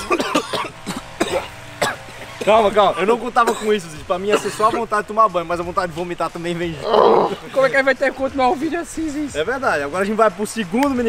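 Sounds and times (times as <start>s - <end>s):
man gagging and coughing: 0.0s - 4.9s.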